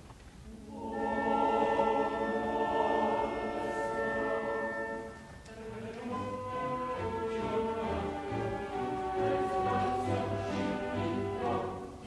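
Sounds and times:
opera chorus with orchestra: 0:00.4 - 0:12.0.

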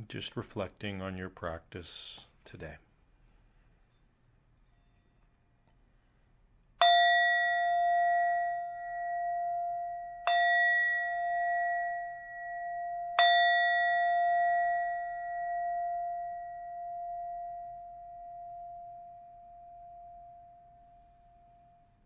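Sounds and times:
meditation bell ringing: 0:06.8 - 0:22.0.

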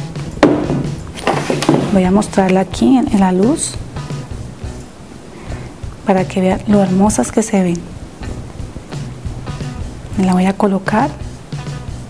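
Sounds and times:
knock on tabletop: 0:00.4 - 0:02.0.

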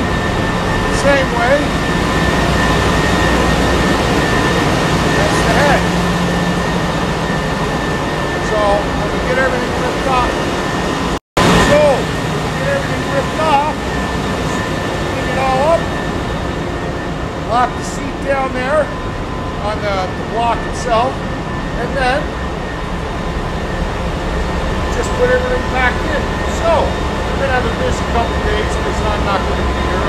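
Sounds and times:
engine-room machinery drone: 0:00.0 - 0:30.0.

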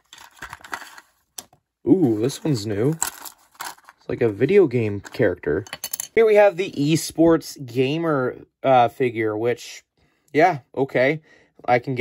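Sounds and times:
person speaking: 0:01.8 - 0:03.1, 0:04.0 - 0:12.0.

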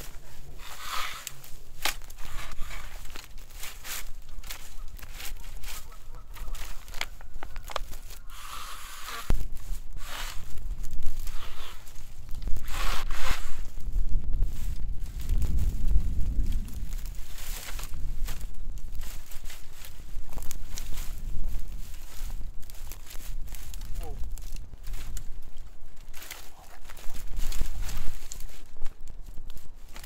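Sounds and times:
dry vines snapping and rustling: 0:00.0 - 0:30.0
footsteps on dry grass: 0:00.0 - 0:30.0
low rumble: 0:09.3 - 0:29.7.

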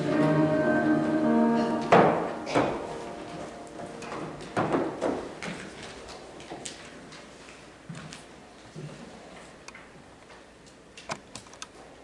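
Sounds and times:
room hiss: 0:00.0 - 0:06.4.

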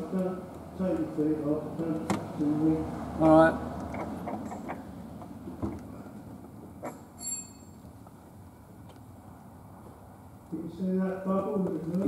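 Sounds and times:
brief high squeak: 0:06.9 - 0:07.8
faint clicks and light knocks: 0:08.8 - 0:09.5.

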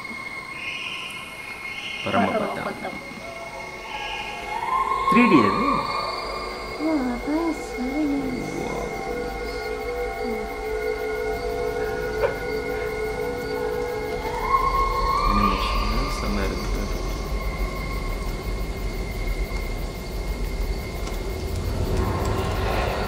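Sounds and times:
sustained droning tones: 0:00.0 - 0:23.0
rising high tone: 0:03.9 - 0:09.6, 0:14.0 - 0:17.2.

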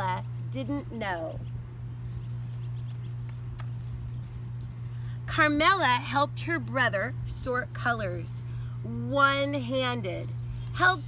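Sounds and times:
steady low hum: 0:00.0 - 0:11.0
book pages turning: 0:02.1 - 0:04.6.

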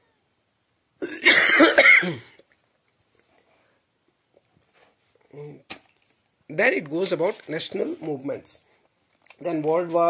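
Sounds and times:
person coughing: 0:01.0 - 0:02.4.

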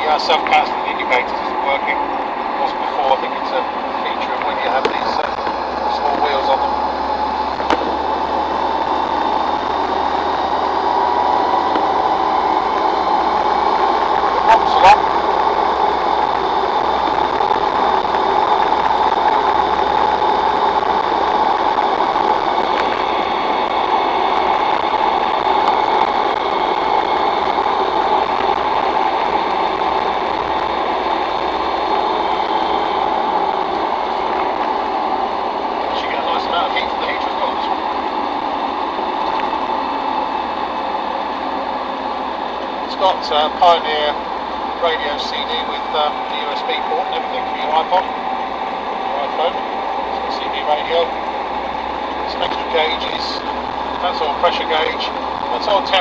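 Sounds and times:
diesel engine inside cab: 0:00.0 - 0:56.0
road noise: 0:00.0 - 0:56.0.

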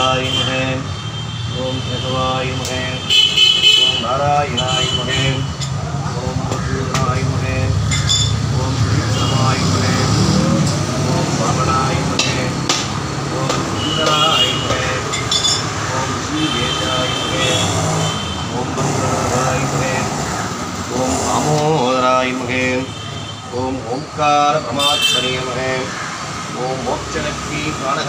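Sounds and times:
background traffic rumble: 0:00.0 - 0:28.0
man chanting: 0:00.0 - 0:28.0.

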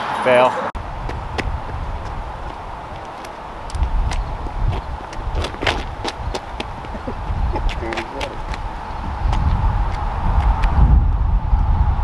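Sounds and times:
wind buffeting microphone: 0:00.8 - 0:12.0.

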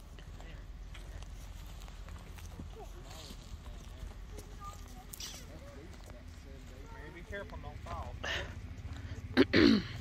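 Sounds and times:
footsteps crunching on dirt: 0:00.0 - 0:09.3
faint voices: 0:00.0 - 0:10.0.

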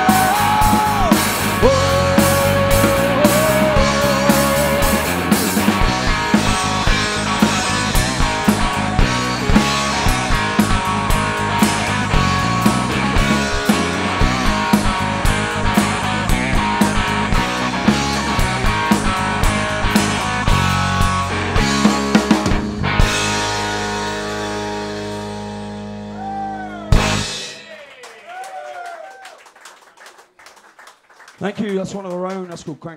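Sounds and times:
electric guitar: 0:00.0 - 0:27.7
bass guitar: 0:00.0 - 0:27.8.

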